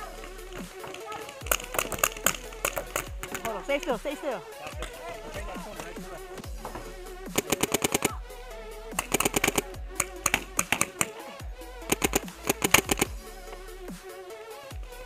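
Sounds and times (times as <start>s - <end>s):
paintball marker firing rapidly: 0.0s - 6.3s, 7.3s - 8.2s, 8.9s - 13.2s
electronic music: 0.0s - 15.0s.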